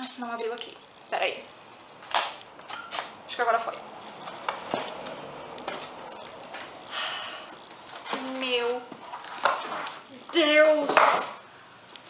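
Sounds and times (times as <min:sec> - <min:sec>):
cardboard scraping and rustling: 0:07.8 - 0:10.0.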